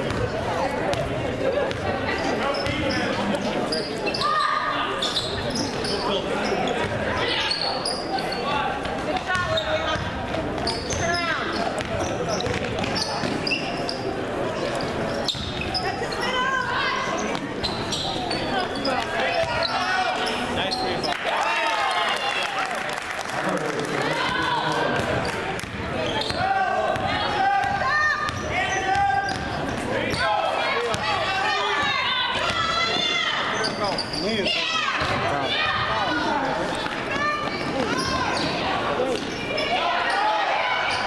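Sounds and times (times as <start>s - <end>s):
chatter and calls of people: 0.0s - 41.0s.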